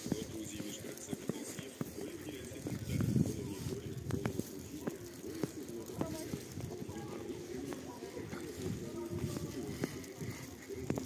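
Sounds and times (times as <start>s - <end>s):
footsteps on packed snow: 0.0s - 11.0s
low muffled voices: 0.0s - 11.0s.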